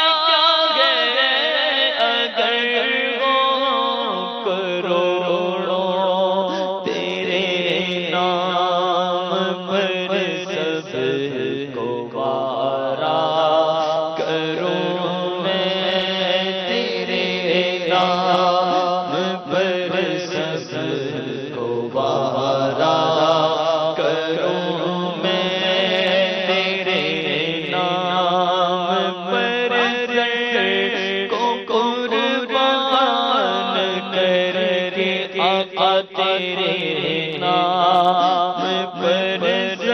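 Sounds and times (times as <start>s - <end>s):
man singing melismatic notes: 0.0s - 39.9s.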